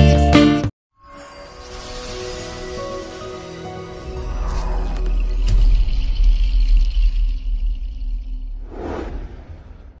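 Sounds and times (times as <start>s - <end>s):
whoosh: 8.5s - 10.0s.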